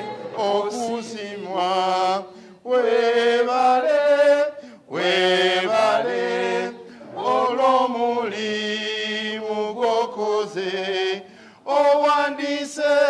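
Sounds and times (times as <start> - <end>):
group singing a chant: 0.0 - 13.0.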